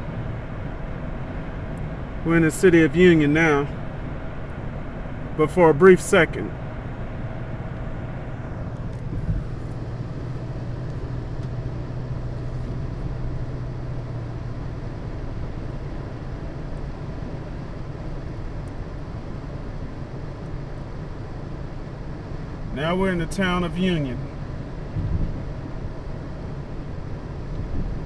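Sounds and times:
car engine and road noise: 0.0s - 28.0s.

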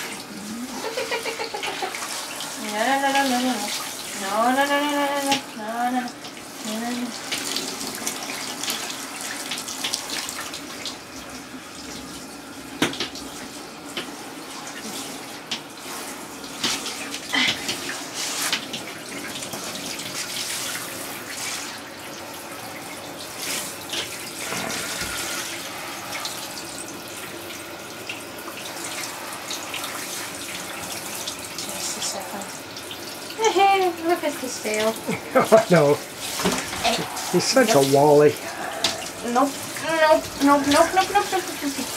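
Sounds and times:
shower water spraying: 0.0s - 41.9s.

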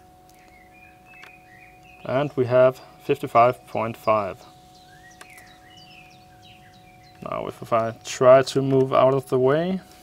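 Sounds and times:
birds chirping: 0.0s - 10.0s
faint steady hum: 0.0s - 10.0s.

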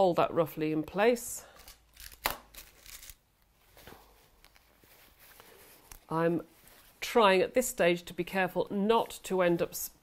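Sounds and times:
fabric rustling: 2.0s - 7.5s.

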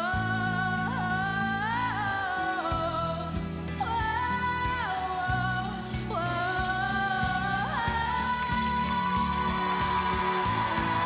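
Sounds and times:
woman singing wordless held notes: 0.0s - 11.0s
live band accompaniment: 2.4s - 11.0s.

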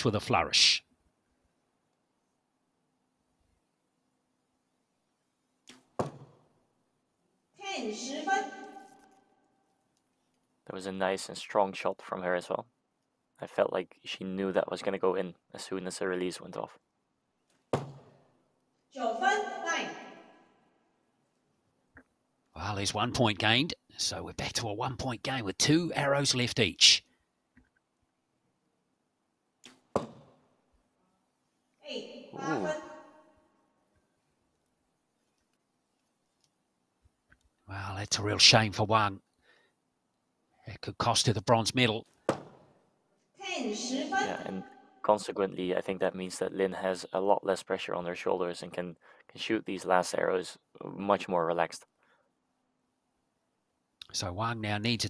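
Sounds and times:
arrow striking target: 6.0s - 6.3s, 17.8s - 18.1s, 29.9s - 30.3s, 42.3s - 42.6s.

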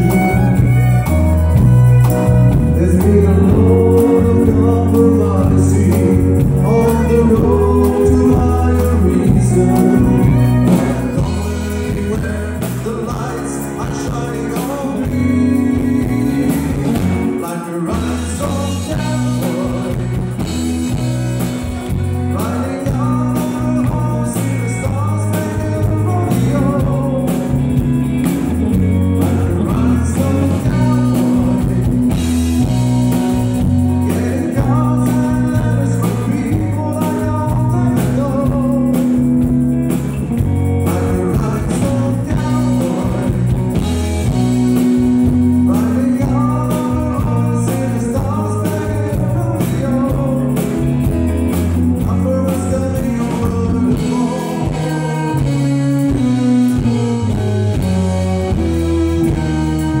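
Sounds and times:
country band playing: 0.0s - 60.0s
electric guitar: 0.0s - 60.0s
low bass notes: 0.0s - 60.0s
man singing into microphone: 2.3s - 21.4s, 22.2s - 28.0s, 29.1s - 32.7s, 33.9s - 39.5s, 40.8s - 51.0s, 51.9s - 57.4s.

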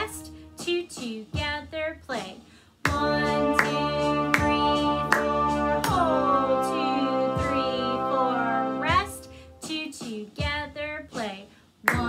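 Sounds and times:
hands clapping a rhythm: 2.2s - 9.2s, 11.1s - 12.0s.

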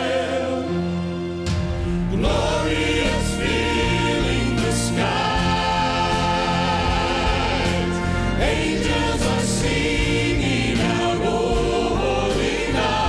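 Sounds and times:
choir singing in harmony: 0.0s - 13.0s
orchestra accompaniment: 0.0s - 13.0s.

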